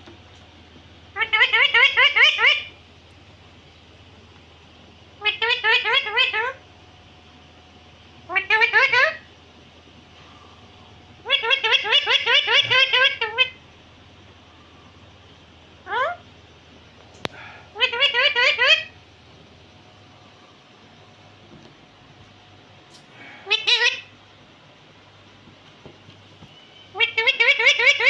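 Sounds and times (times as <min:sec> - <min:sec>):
low room hiss: 0:00.0 - 0:28.0
low steady hum: 0:00.0 - 0:28.0
parakeet chirping calls: 0:01.1 - 0:02.8, 0:05.2 - 0:06.6, 0:08.2 - 0:09.3, 0:11.2 - 0:13.7, 0:15.8 - 0:16.3, 0:17.7 - 0:19.0, 0:23.4 - 0:24.2, 0:26.8 - 0:28.0.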